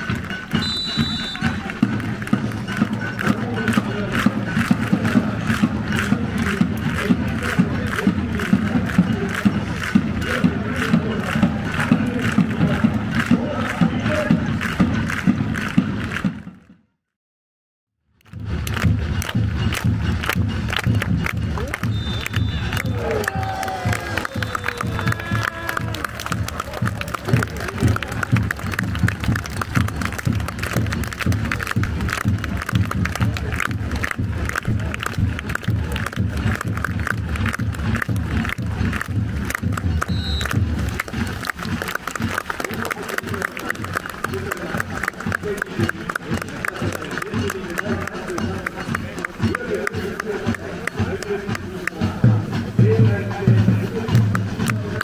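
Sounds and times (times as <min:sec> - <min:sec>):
steady drum beat: 0:00.0 - 0:16.5, 0:18.3 - 0:55.0.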